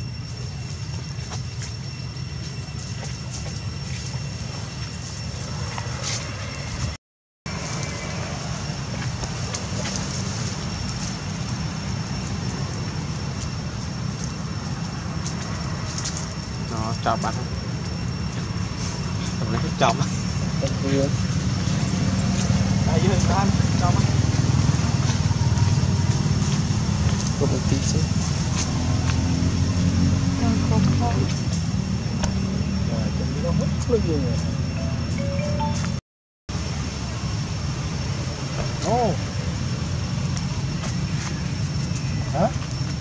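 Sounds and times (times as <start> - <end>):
vehicle engine running: 18.4 - 36.0
thin steady high tone: 32.0 - 36.0
high-pitched tone: 34.2 - 36.0.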